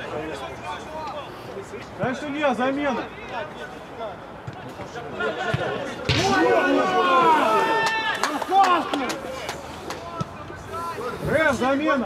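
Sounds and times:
players calling out: 0:04.2 - 0:12.0.

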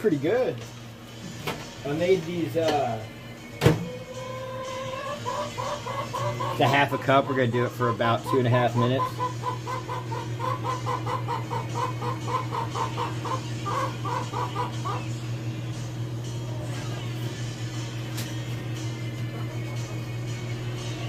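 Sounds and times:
steady low hum: 0:00.0 - 0:21.0
chickens clucking: 0:04.1 - 0:15.2.

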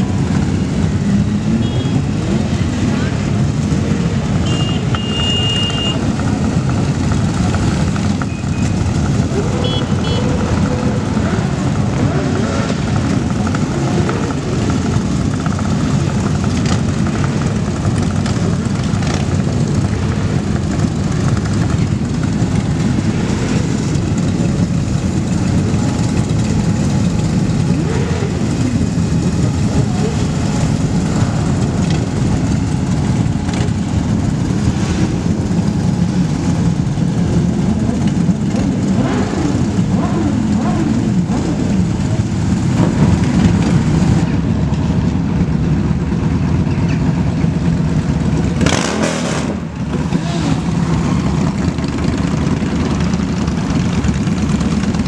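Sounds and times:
motorcycle engines rumbling: 0:00.0 - 0:55.0
motorcycle revving: 0:00.0 - 0:55.0.

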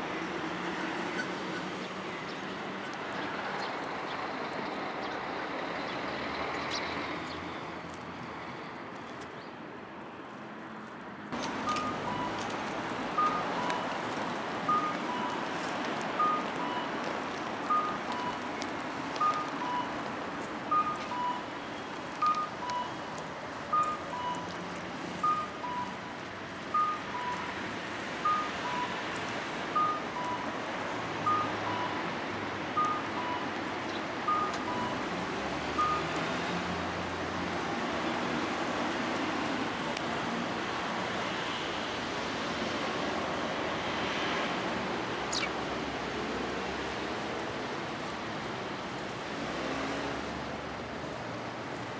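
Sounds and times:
steady background noise: 0:00.0 - 0:51.9
two-tone electronic warning beep: 0:11.6 - 0:12.5, 0:13.1 - 0:14.0, 0:14.7 - 0:15.5, 0:16.2 - 0:17.0, 0:17.7 - 0:18.5, 0:19.2 - 0:20.0, 0:20.7 - 0:21.5, 0:22.2 - 0:23.0, 0:23.7 - 0:24.5, 0:25.2 - 0:26.0, 0:26.7 - 0:27.5, 0:28.2 - 0:29.0, 0:29.8 - 0:30.5, 0:31.2 - 0:32.1, 0:32.7 - 0:33.5, 0:34.3 - 0:35.0, 0:35.8 - 0:36.2.

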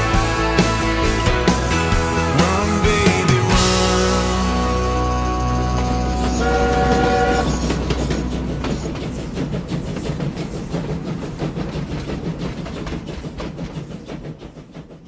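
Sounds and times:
train wheels clattering on rails: 0:00.0 - 0:15.0
train horn: 0:04.1 - 0:09.0.

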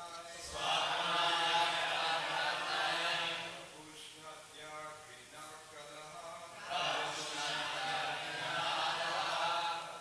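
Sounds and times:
congregation chanting in unison: 0:00.3 - 0:03.9, 0:06.1 - 0:10.0.

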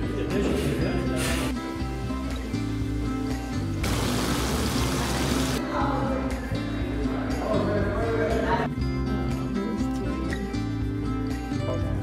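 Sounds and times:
background music: 0:00.0 - 0:12.0
fountain water splashing: 0:03.8 - 0:05.6.

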